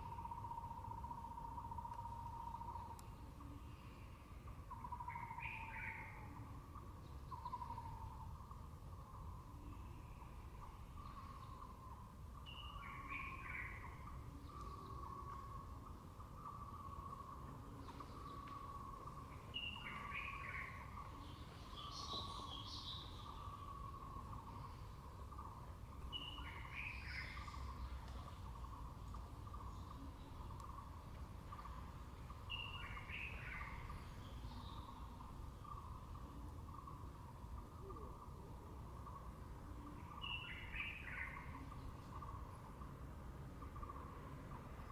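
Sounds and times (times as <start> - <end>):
birds calling: 0.0 - 44.9.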